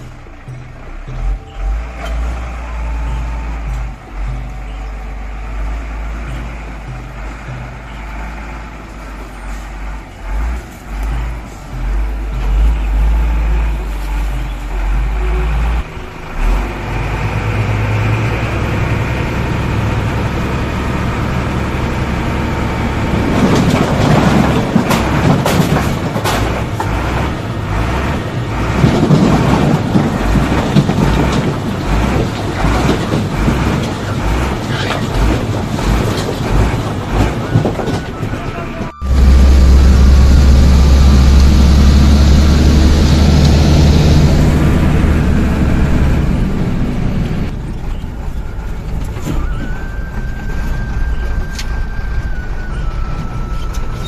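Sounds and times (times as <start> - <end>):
diesel truck engine running: 0.0 - 54.0.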